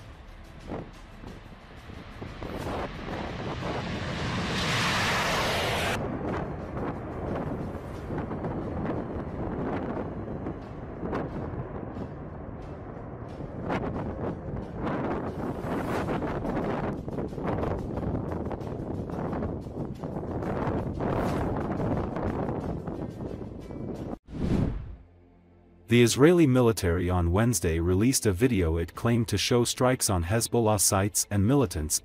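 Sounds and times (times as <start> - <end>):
jet bomber flying past: 0.6 - 23.0
wind buffeting microphone: 0.6 - 24.2.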